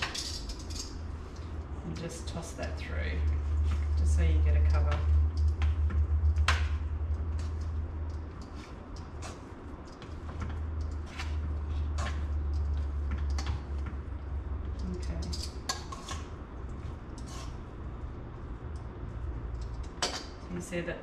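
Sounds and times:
metal tongs scraping metal bowl: 0.0 - 1.0, 14.8 - 16.4, 17.1 - 17.7
steady low hum: 0.0 - 21.0.

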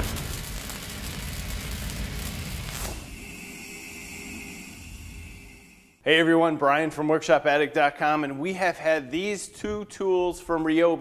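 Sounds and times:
boom with rumbling tail: 0.0 - 3.2
steady ringing hum: 3.0 - 6.0.

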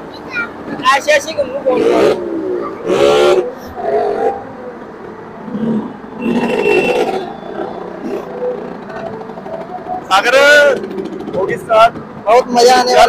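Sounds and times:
crowd voices: 0.0 - 13.0.

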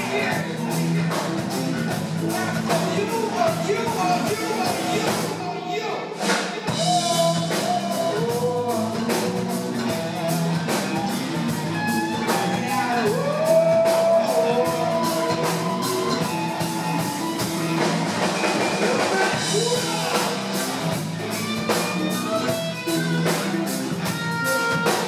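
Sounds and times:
live rock band playing: 0.0 - 25.0
bending melody line: 6.7 - 25.0.

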